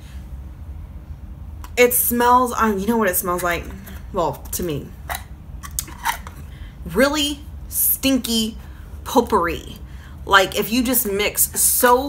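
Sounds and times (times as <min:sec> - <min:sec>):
woman speaking: 0:01.8 - 0:05.1, 0:06.8 - 0:12.0.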